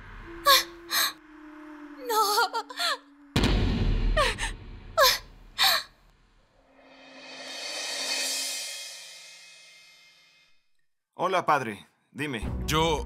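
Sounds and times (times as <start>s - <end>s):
low dramatic music hit: 3.3s - 5.0s
woman crying out in pain: 4.2s - 5.9s
cymbal-like whoosh: 6.6s - 10.7s.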